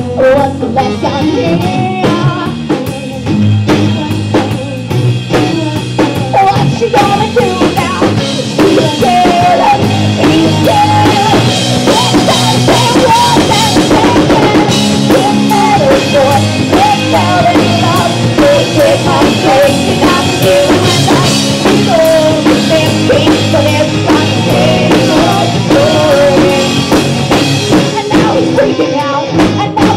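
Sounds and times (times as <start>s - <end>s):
bass and electric guitars: 0.0s - 29.9s
drum kit steady beat: 0.0s - 29.9s.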